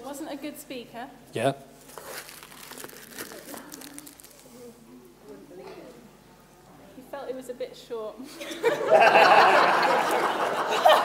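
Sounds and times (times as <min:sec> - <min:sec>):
crinkling and rustling: 0:01.8 - 0:04.7.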